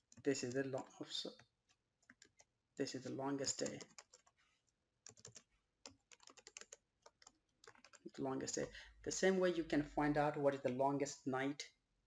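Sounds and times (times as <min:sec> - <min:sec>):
typing on a computer keyboard: 0:02.0 - 0:02.5, 0:03.4 - 0:04.3, 0:05.0 - 0:08.7.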